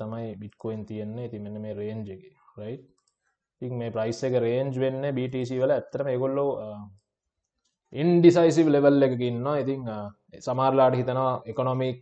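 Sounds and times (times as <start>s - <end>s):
man speaking: 0.0s - 2.8s, 3.6s - 7.0s, 8.0s - 12.0s.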